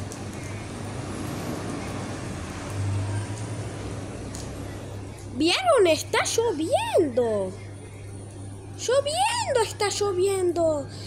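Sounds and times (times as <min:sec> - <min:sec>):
rain falling: 0:00.0 - 0:06.8.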